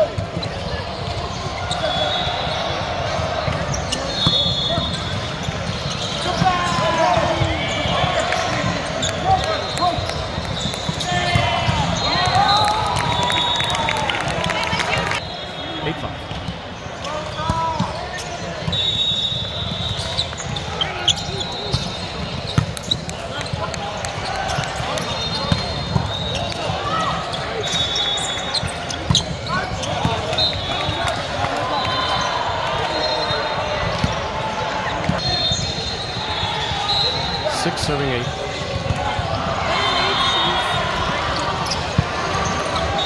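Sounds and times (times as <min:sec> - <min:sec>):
shoe squeals: 0:00.0 - 0:43.0
volleyball hits and bounces: 0:03.4 - 0:13.5, 0:41.0 - 0:42.9.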